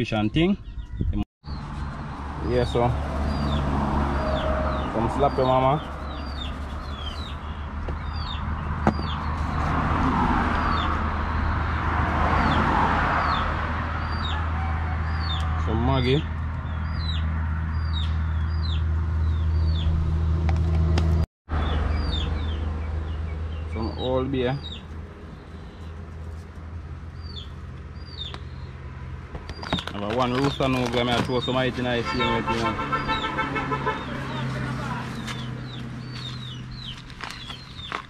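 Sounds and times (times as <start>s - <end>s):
small birds chirping: 0.1s - 9.7s, 10.6s - 11.8s, 16.0s - 20.0s, 21.6s - 38.0s.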